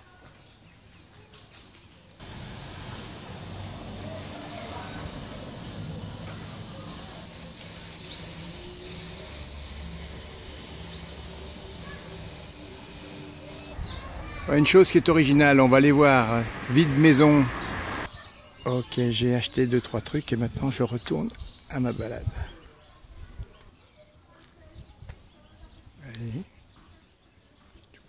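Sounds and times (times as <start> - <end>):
road traffic hum: 2.2 - 18.1.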